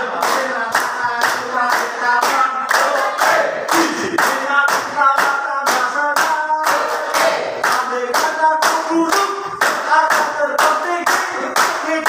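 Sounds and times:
people clapping in unison: 0:00.0 - 0:12.0
people singing a tune: 0:00.0 - 0:12.0.

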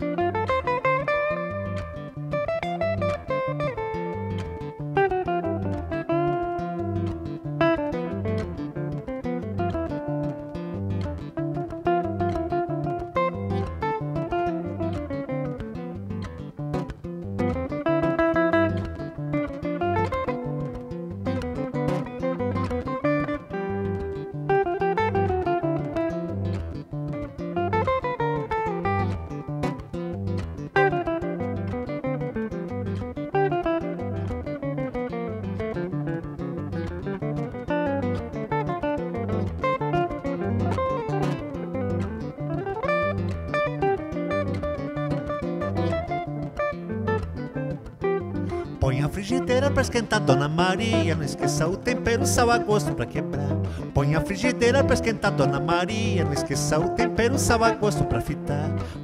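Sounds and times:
electric guitar jazz solo: 0:00.0 - 0:59.0.

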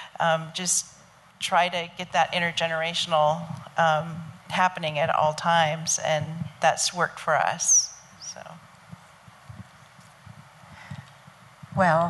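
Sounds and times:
faint room hiss: 0:00.0 - 0:12.0
microphone handling thumps: 0:03.4 - 0:06.6, 0:08.7 - 0:12.0.

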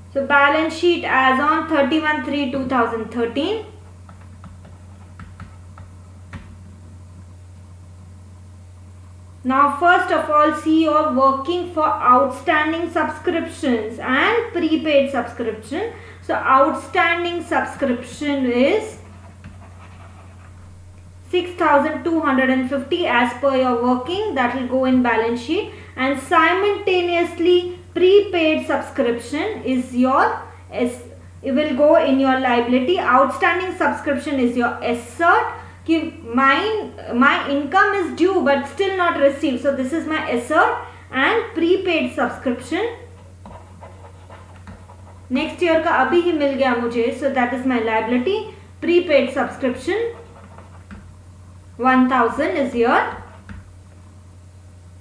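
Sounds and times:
low electrical hum: 0:00.0 - 0:55.0.

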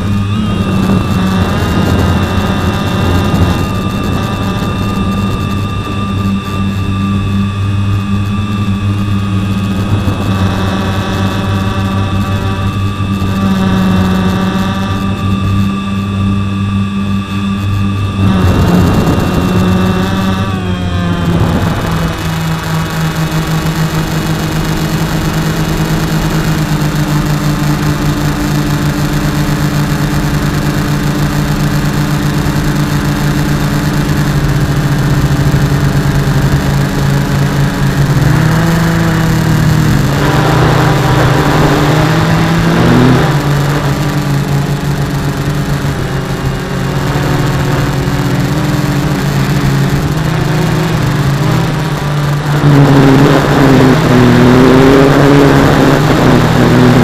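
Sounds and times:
quadcopter motors whining: 0:00.0 - 0:57.0.

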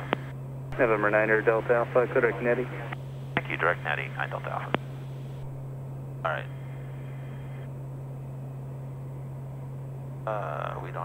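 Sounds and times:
turboprop cabin drone: 0:00.0 - 0:11.0.

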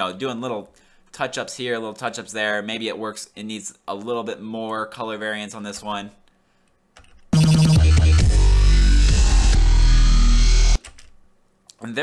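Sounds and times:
electronic music with deep bass: 0:07.4 - 0:10.8.

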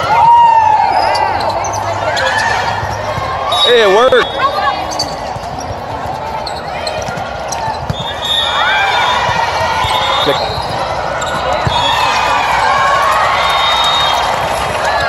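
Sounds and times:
sneakers squeaking: 0:00.0 - 0:15.0
voices calling and chattering: 0:00.0 - 0:15.0.

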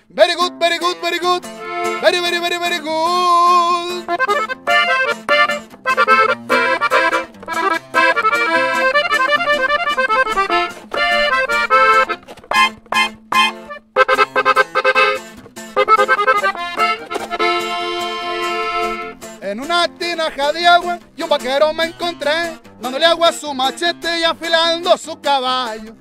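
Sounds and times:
guitar accompaniment: 0:00.0 - 0:26.0
button accordion playing: 0:01.4 - 0:02.6, 0:03.5 - 0:19.4.

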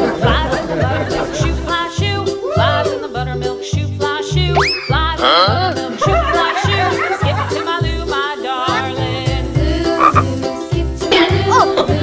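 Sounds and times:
music with bass beat: 0:00.0 - 0:12.0
frog-like croaking: 0:10.0 - 0:10.3.

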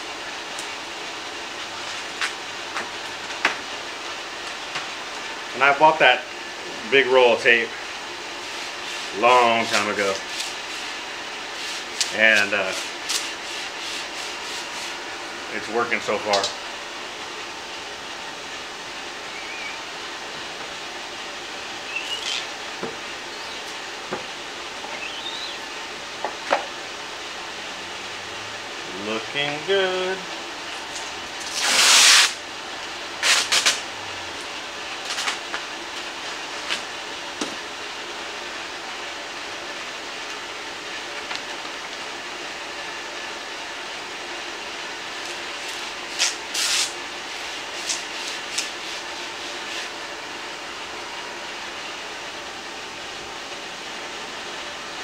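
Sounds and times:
tape ripping off a roll: 0:31.4 - 0:32.4, 0:33.2 - 0:33.8, 0:46.1 - 0:47.0.

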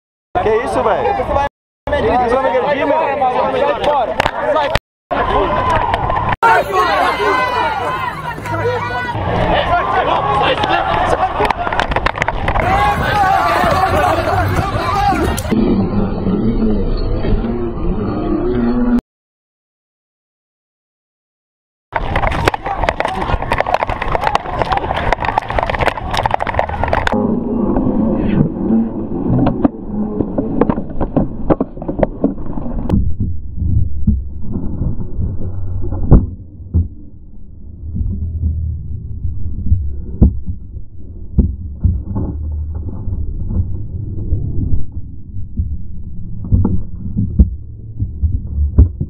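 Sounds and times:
street rumble: 0:00.6 - 0:18.7, 0:21.9 - 0:49.0.

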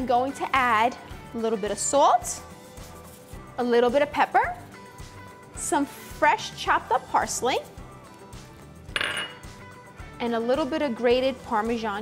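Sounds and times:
faint background music: 0:00.0 - 0:12.0
ceramic bowl clinking: 0:08.9 - 0:09.5.

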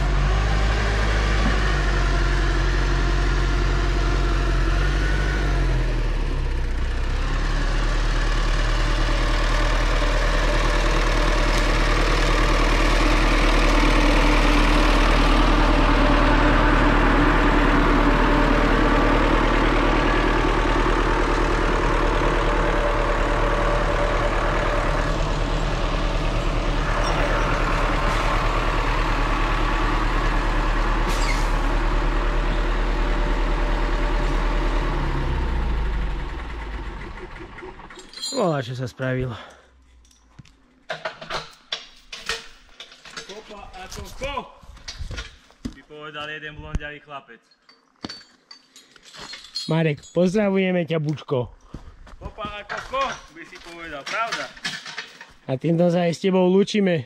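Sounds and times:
diesel engine running: 0:00.0 - 0:40.9.

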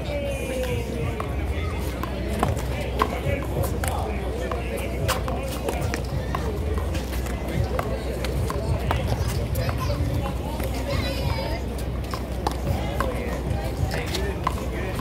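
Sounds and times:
background chatter: 0:00.0 - 0:15.0.

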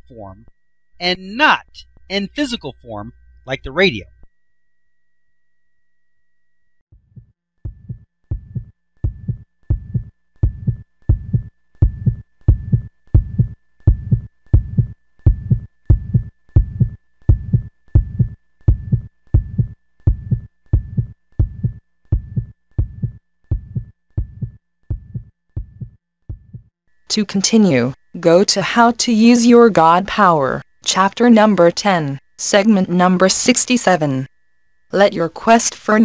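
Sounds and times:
heartbeat thumps: 0:07.0 - 0:26.7.

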